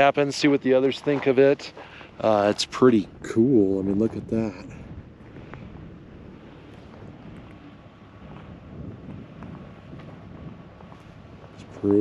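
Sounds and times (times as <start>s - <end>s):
wind on microphone: 2.8s - 12.0s.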